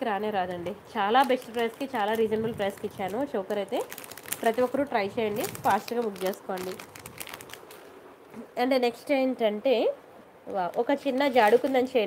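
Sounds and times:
person speaking: 0.0s - 6.9s, 8.3s - 12.0s
plastic bags crinkling: 0.2s - 8.1s, 10.5s - 12.0s.

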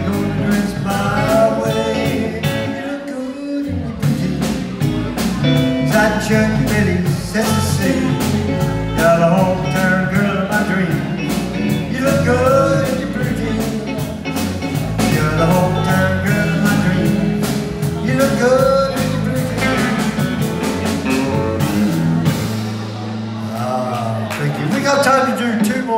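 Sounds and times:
man singing into a microphone: 0.0s - 14.1s, 15.0s - 20.4s, 23.4s - 25.9s
bass guitar: 0.0s - 25.9s
electric guitar: 0.0s - 25.9s
drum kit with cymbals: 3.9s - 25.9s.

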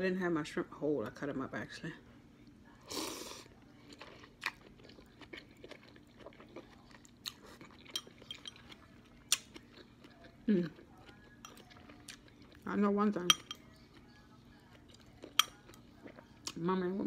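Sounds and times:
close-up chewing with mouth clicks: 3.8s - 12.7s.

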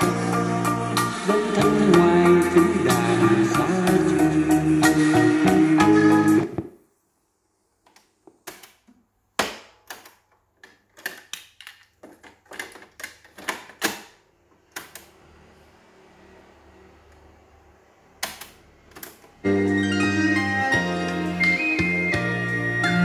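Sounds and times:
music from cassette player: 0.0s - 6.7s, 19.4s - 23.0s.

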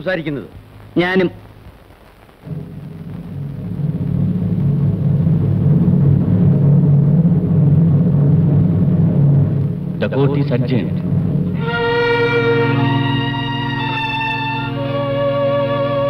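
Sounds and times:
sustained orchestral chord: 11.5s - 16.0s.

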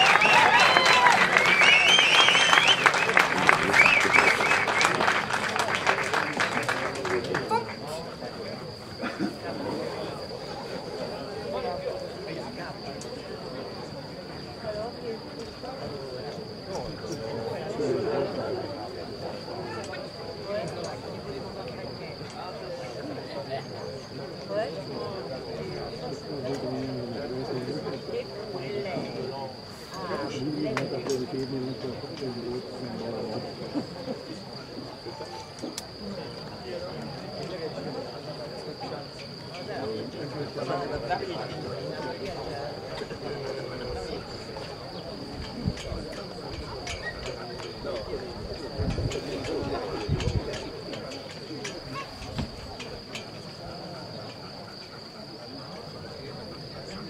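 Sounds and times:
spectators applauding: 0.0s - 8.0s
distant spectators talking: 0.0s - 57.0s
high-pitched insect chorus: 0.0s - 57.0s
voices calling out: 0.0s - 57.0s.

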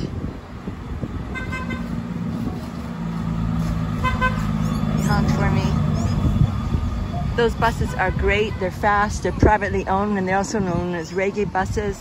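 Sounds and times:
bus engine drone: 0.0s - 12.0s
vehicle horn toots: 1.3s - 2.0s, 4.0s - 4.5s.

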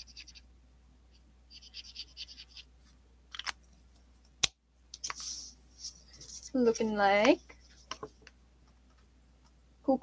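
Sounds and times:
marker scratching on paper: 0.0s - 0.4s, 1.5s - 2.7s.

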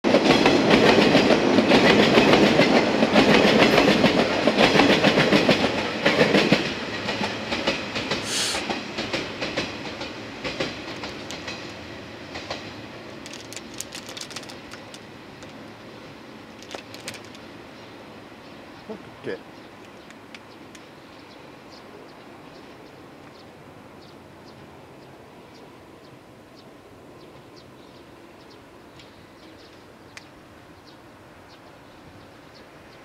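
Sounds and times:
train wheels clattering on rails: 0.1s - 15.7s.

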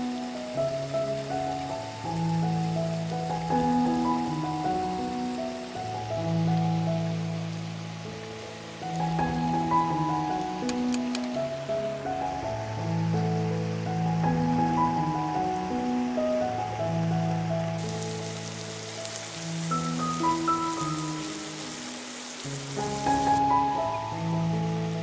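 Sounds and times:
slow background music: 0.0s - 25.0s
chicken sizzling in oil: 17.8s - 23.7s.

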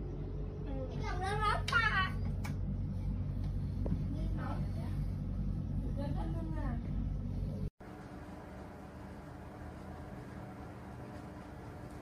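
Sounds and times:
air purifier low hum: 0.0s - 12.0s.

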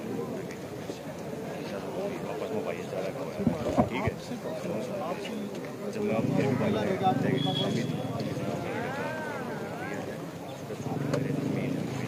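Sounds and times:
men's voices talking: 0.0s - 12.0s
thumps on microphone: 3.4s - 4.2s.

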